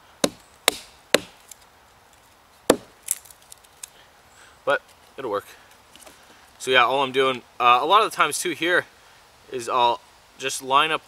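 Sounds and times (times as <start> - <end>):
axe striking log: 0.2 - 1.6, 2.7 - 3.3.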